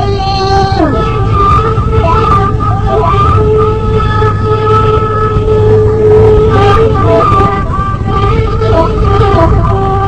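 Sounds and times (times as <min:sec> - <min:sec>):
reed flute playing a held note: 0:00.0 - 0:10.0
steady low hum: 0:00.0 - 0:10.0.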